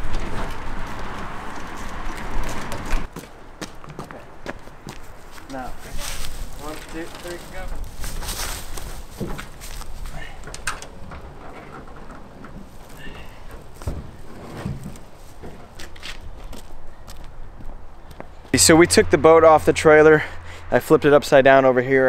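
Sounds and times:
footsteps on leaf litter: 4.5s - 10.1s
boat thumping on wooden pallets: 7.5s - 15.8s.

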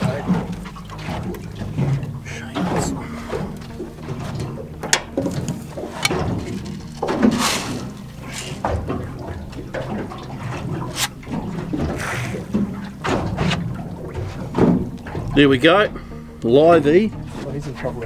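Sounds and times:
water lapping against boat hull: 0.0s - 18.0s.

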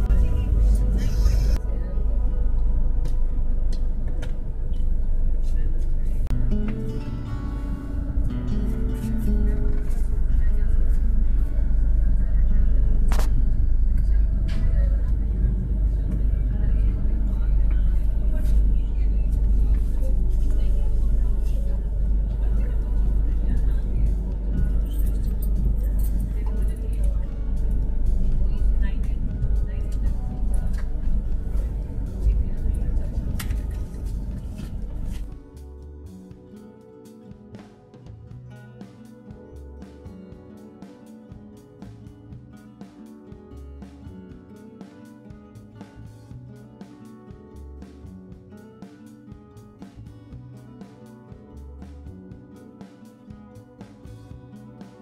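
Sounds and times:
train rumbling: 0.0s - 6.3s, 7.6s - 35.3s
voices: 0.0s - 6.3s, 8.5s - 35.3s
background music: 0.0s - 55.0s.

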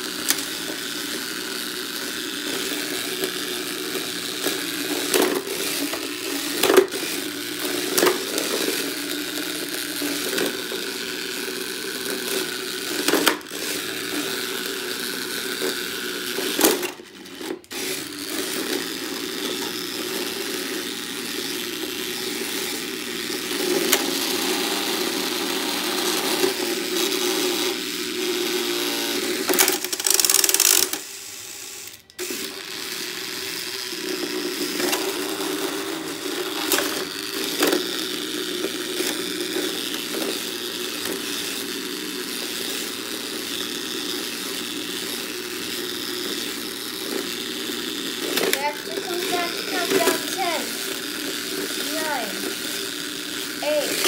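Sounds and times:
small electric motors whirring: 0.0s - 54.0s.

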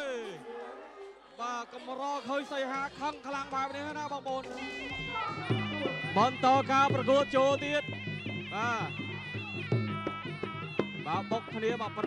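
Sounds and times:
wavering reed pipe melody: 4.5s - 12.0s.

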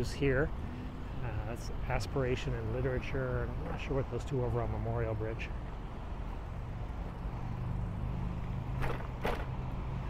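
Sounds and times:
car traffic engine hum: 0.0s - 10.0s.

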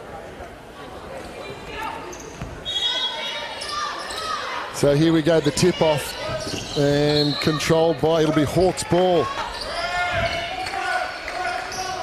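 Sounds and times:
murmur of gym crowd: 0.0s - 12.0s
sneakers squeaking on hardwood: 6.1s - 7.6s.

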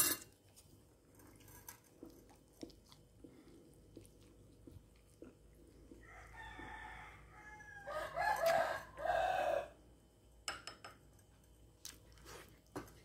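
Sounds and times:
rooster crowing: 6.0s - 9.8s.

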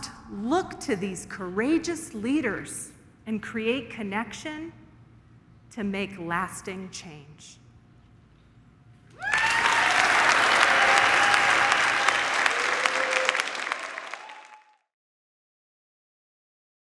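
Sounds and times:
audience applauding: 9.2s - 14.9s.

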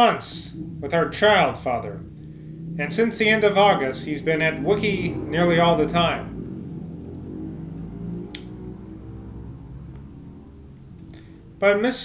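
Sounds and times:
low droning background music: 0.0s - 11.8s.

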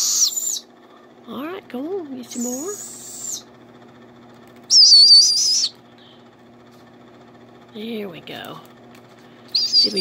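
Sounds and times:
owl chick screeching: 0.0s - 0.7s, 2.4s - 3.5s, 4.7s - 5.8s, 9.5s - 10.0s.

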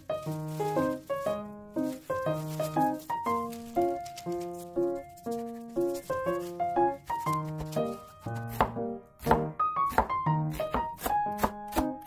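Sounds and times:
light melodic music: 0.0s - 12.0s
knife chopping on cutting board: 8.4s - 12.0s.

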